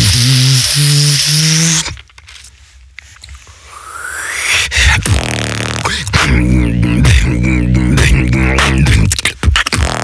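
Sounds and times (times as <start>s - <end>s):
beatboxer hissing: 0.0s - 2.0s, 3.6s - 10.0s
hummed low bass notes: 4.8s - 10.0s.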